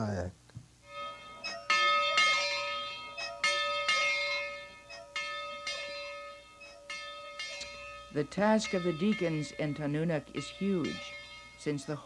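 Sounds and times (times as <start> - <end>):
church bell ringing: 0.8 - 12.0.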